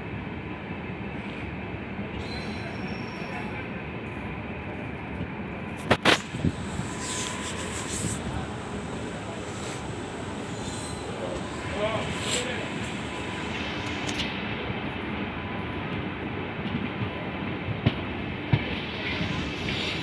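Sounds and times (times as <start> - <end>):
train wheels rolling on track: 0.8 - 20.0.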